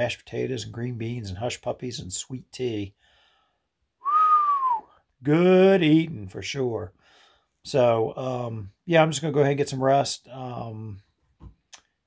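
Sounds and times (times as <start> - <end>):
man whistling: 4.0 - 5.0.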